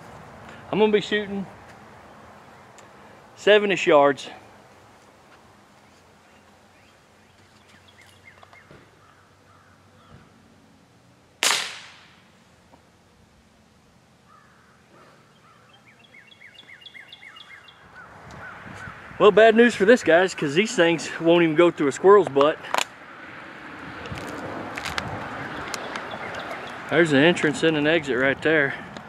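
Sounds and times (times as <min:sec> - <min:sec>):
birds chirping: 0:00.0 - 0:10.5, 0:14.2 - 0:22.7, 0:25.2 - 0:28.8
revolver gunshot: 0:11.4 - 0:12.2.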